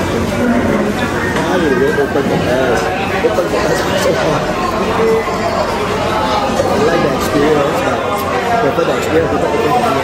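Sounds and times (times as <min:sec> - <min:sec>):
chatter of diners: 0:00.0 - 0:10.0.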